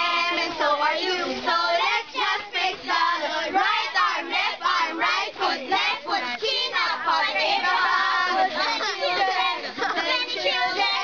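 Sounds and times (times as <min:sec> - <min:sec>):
children singing together: 0:00.0 - 0:11.0.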